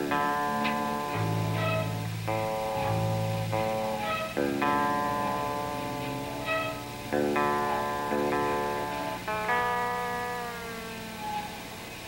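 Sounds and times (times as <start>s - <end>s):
bass notes: 0.0s - 10.4s
guitar chords: 0.0s - 12.0s.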